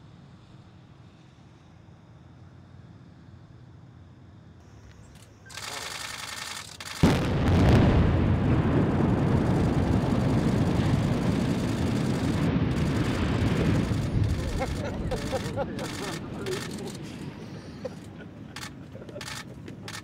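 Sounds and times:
voices: 0:04.7 - 0:07.0, 0:09.5 - 0:20.0
loud demolition blast: 0:05.5 - 0:17.2
rumble of tower collapsing: 0:07.0 - 0:16.3.

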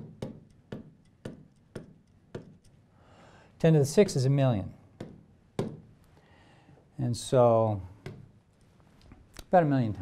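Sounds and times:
pen tapping on screen: 0:00.0 - 0:02.8, 0:05.0 - 0:05.9.

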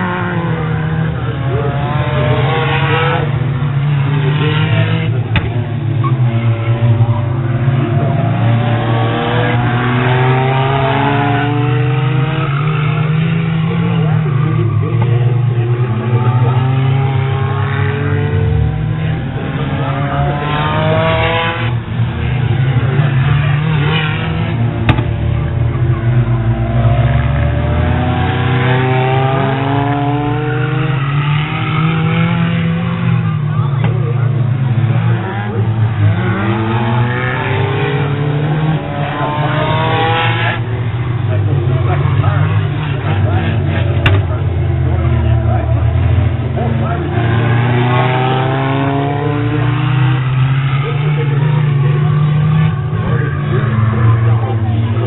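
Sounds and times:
low drone of engines: 0:00.0 - 0:55.0
race car engines accelerating: 0:00.0 - 0:55.0.

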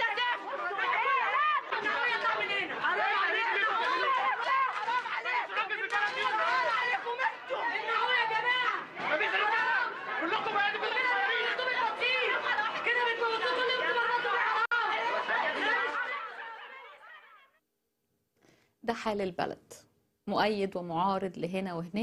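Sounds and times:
crowd shouting and talking: 0:00.0 - 0:17.5.

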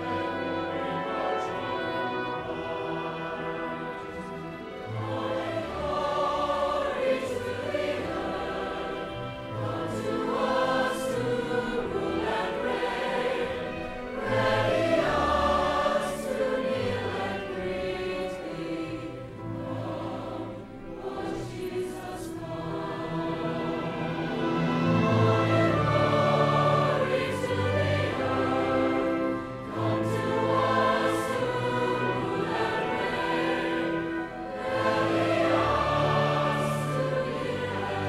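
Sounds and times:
choir singing: 0:00.0 - 0:38.0
instrumental accompaniment: 0:00.0 - 0:38.0.

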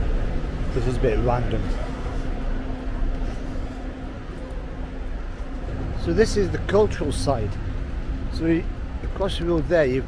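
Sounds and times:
faint constant hum: 0:00.0 - 0:10.0
street traffic rumble: 0:00.0 - 0:10.0.

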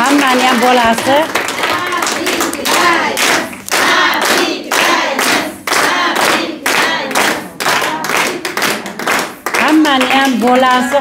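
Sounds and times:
women clapping hands: 0:00.0 - 0:11.0
voices singing: 0:01.5 - 0:08.4.

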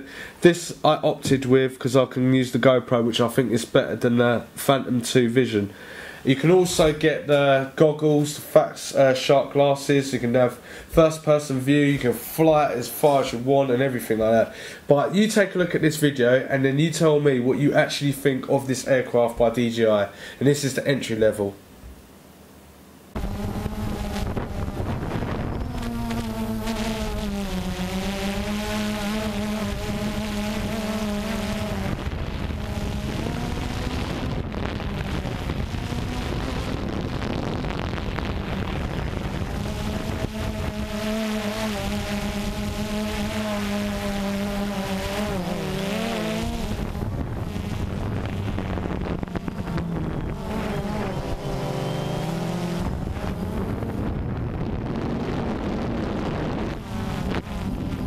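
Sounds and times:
drone propellers buzzing: 0:21.8 - 0:58.0.

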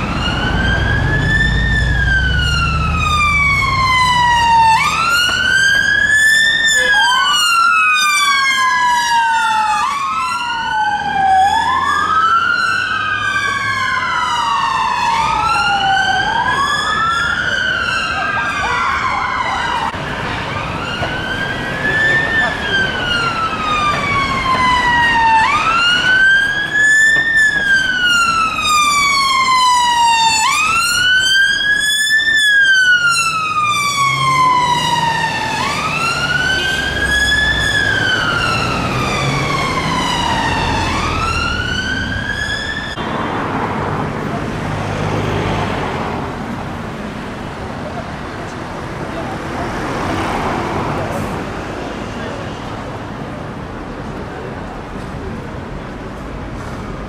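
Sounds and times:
second emergency siren: 0:00.0 - 0:43.2
ambulance siren wailing: 0:00.0 - 0:52.8
low traffic rumble: 0:00.0 - 0:57.0.

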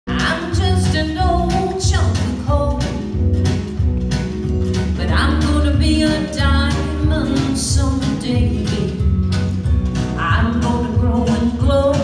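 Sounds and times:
woman singing country song: 0:00.1 - 0:03.2, 0:05.0 - 0:09.2, 0:10.1 - 0:12.0
live band music: 0:00.1 - 0:12.0.

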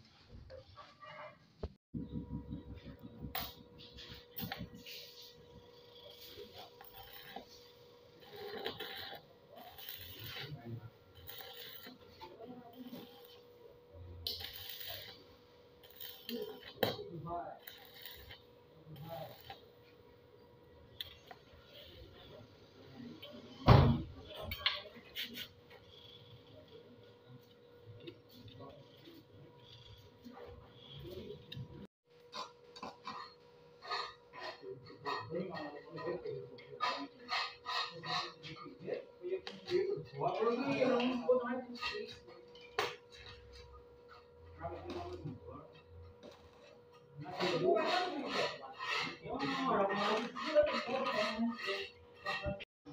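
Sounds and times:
welding arc crackling: 0:06.2 - 0:19.8.

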